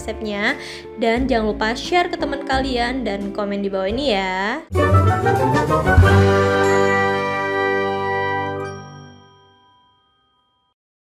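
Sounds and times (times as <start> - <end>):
intro jingle with held chord: 4.7 - 9.8.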